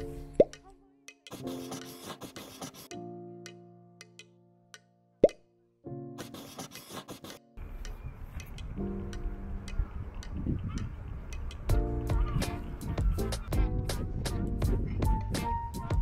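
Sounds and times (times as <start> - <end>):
background music: 0.0 - 7.7, 11.4 - 16.0.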